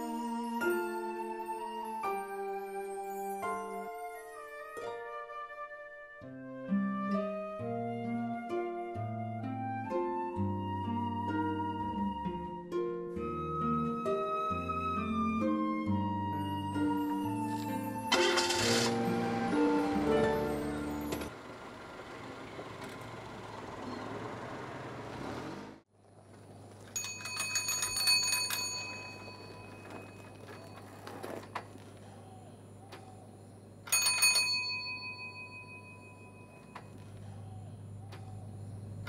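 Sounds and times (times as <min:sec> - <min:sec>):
bicycle bell ringing: 0:26.9 - 0:31.1, 0:33.9 - 0:37.0.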